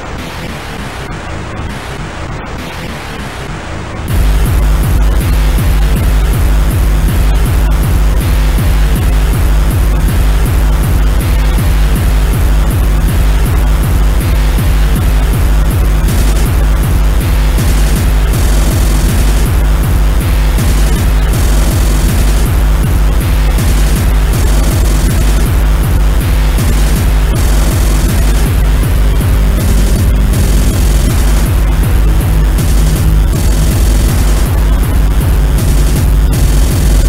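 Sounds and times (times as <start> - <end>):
harsh distorted noise layers: 0.0 - 37.0
fast distorted kick drum: 4.1 - 37.0.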